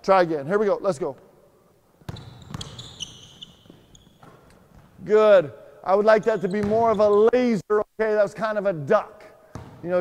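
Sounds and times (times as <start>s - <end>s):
basketball bouncing on gym floor: 2.0s - 5.0s, 6.3s - 7.1s, 9.5s - 9.9s
sneakers squeaking on court: 2.0s - 5.1s, 6.2s - 7.3s, 9.5s - 9.8s.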